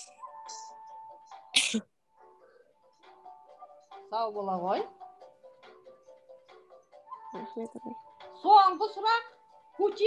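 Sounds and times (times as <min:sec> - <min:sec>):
quiz game background music: 0:00.0 - 0:10.0.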